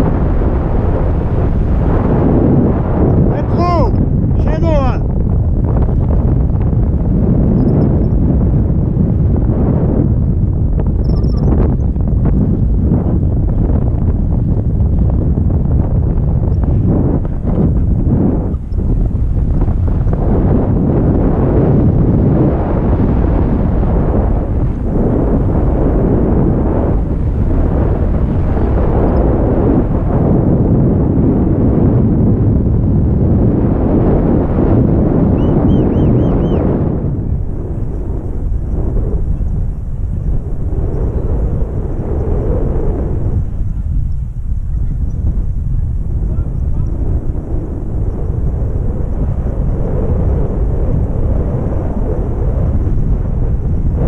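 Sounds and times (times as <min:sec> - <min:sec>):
wind rumbling on microphone: 0:00.0 - 0:54.0.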